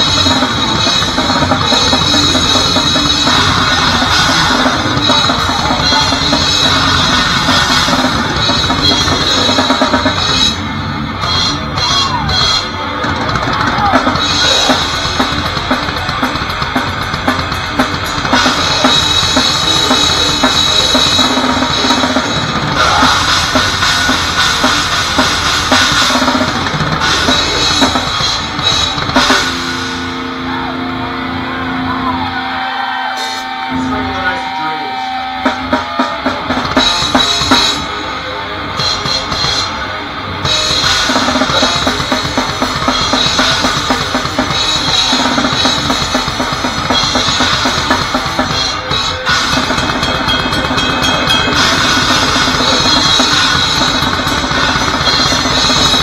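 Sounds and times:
drum kit pounding: 0.0s - 32.4s, 33.2s - 56.0s
loud electric guitars: 0.0s - 56.0s
crashing cymbals: 33.2s - 56.0s.

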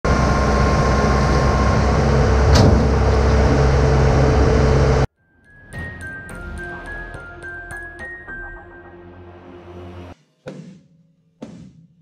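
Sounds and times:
excavator diesel engine whining: 0.1s - 5.1s
chiming music: 5.2s - 9.4s.

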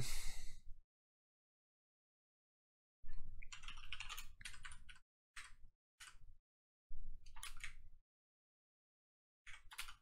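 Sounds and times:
typing on computer keyboard: 3.4s - 6.2s, 7.3s - 7.8s, 9.5s - 10.0s.

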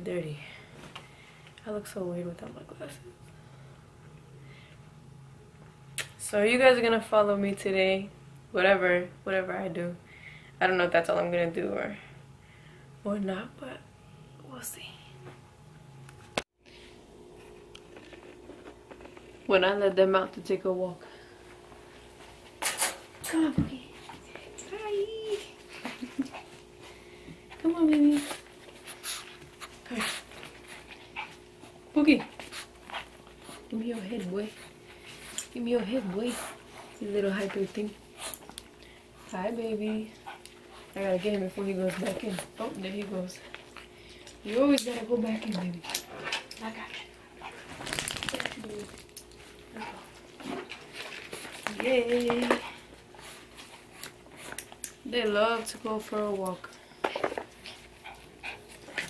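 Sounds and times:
dogs panting and sniffing: 25.3s - 55.7s, 56.6s - 59.0s.

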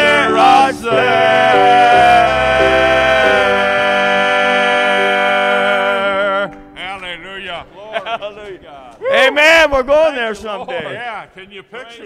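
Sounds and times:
men singing held note: 0.0s - 6.6s
held accompaniment chord: 0.0s - 7.5s.

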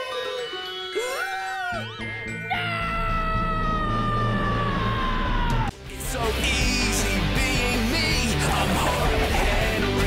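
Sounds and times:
low background music: 0.0s - 10.0s
cartoon boy screaming: 2.5s - 5.7s.

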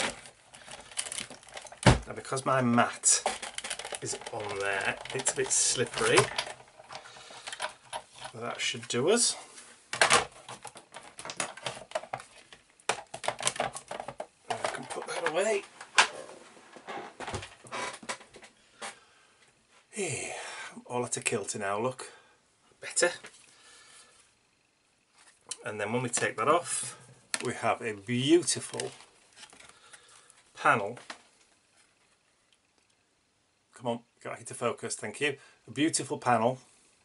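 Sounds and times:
craft materials rustling: 0.0s - 18.6s, 25.1s - 32.3s.

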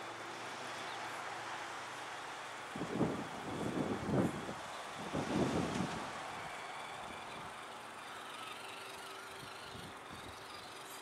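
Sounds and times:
faint electric motor whine: 0.0s - 11.0s
wind buffeting microphone: 2.8s - 7.7s.

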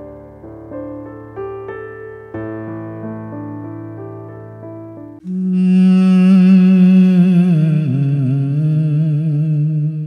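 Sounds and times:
loud hummed vocal note: 5.2s - 10.0s.

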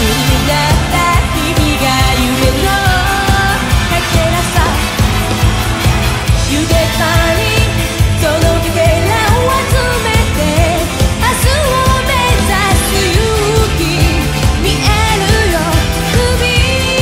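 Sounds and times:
woman singing: 0.0s - 5.1s, 6.2s - 17.0s
drums beating: 0.0s - 17.0s
pop rock band playing: 0.0s - 17.0s.

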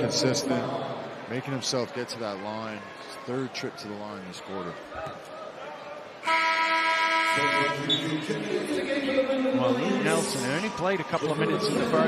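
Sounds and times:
arena horn buzzy tone: 6.2s - 8.2s.

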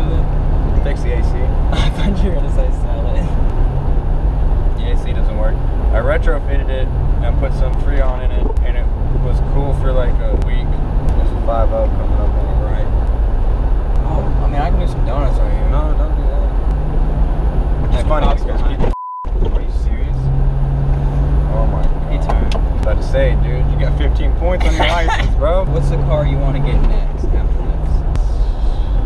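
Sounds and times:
road and engine noise in car: 0.0s - 29.0s
censor bleep: 18.9s - 19.3s.

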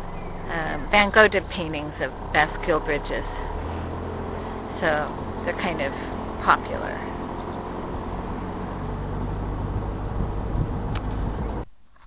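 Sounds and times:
boat engine running: 0.0s - 11.6s
faint outdoor background: 0.0s - 12.0s.

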